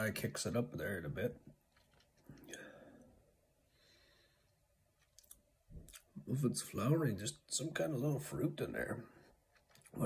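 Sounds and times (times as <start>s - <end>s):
person speaking: 0.0s - 1.6s, 6.0s - 10.0s
mouth clicks and lip smacks: 4.9s - 6.2s, 9.5s - 10.0s.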